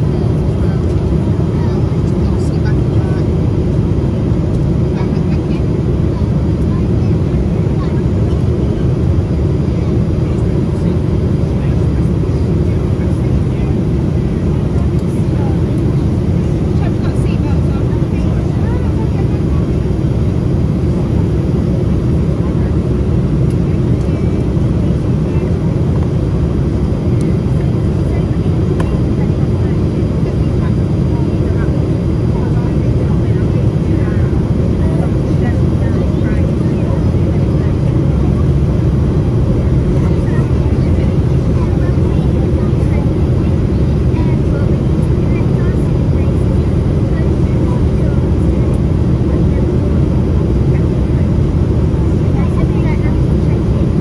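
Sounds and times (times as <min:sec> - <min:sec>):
airplane cabin roar: 0:00.0 - 0:54.0
jet engines humming: 0:00.0 - 0:54.0.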